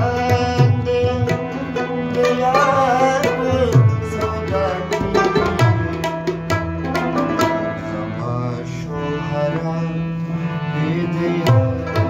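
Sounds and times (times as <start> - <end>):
harmonium playing held notes: 0.0 - 12.0.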